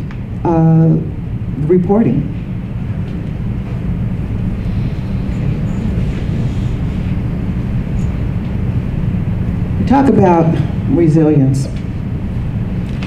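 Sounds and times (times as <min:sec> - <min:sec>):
room background rumble: 0:00.0 - 0:13.0.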